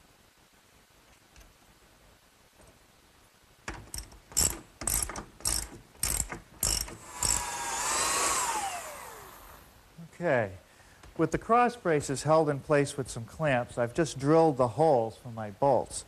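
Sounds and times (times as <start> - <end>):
power drill boring through wood: 6.6 - 9.7.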